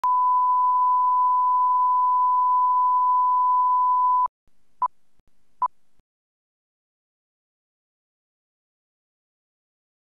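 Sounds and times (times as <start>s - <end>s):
steady test tone beep: 0.0s - 4.3s.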